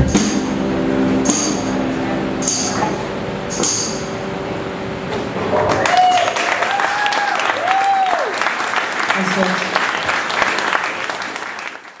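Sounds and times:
audience applauding and cheering: 5.4 - 12.0
high whoops: 5.7 - 8.5.

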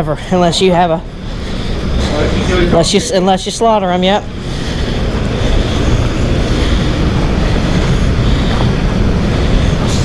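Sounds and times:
loud low rumbling noise: 0.0 - 10.0.

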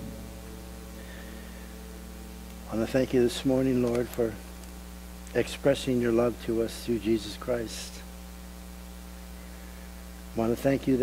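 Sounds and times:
electrical mains hum: 0.0 - 11.0
man talking: 2.7 - 4.5, 5.3 - 8.1, 10.3 - 11.0.

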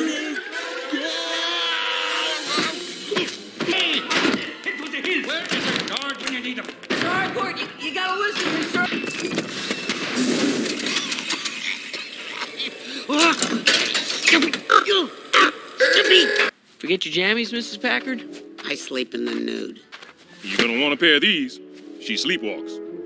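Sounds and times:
film music: 0.0 - 8.6, 17.1 - 23.0
cartoon voices shouting: 0.9 - 4.3, 14.3 - 16.5.

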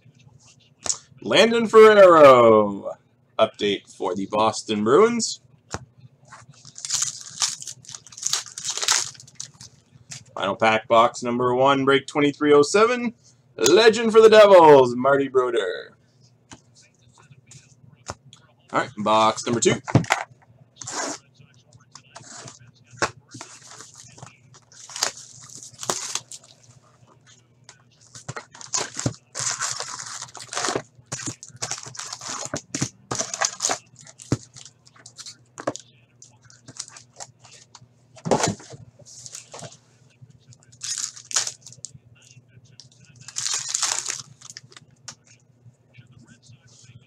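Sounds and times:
wrapper crinkling and rustling: 6.5 - 9.8, 23.3 - 26.6, 28.1 - 35.8, 36.4 - 37.6, 40.8 - 41.8, 43.2 - 44.8.

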